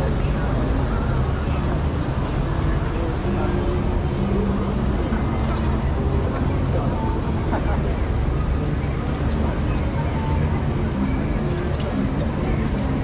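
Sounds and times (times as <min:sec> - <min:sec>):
crowd of pedestrians talking: 0:00.0 - 0:13.0.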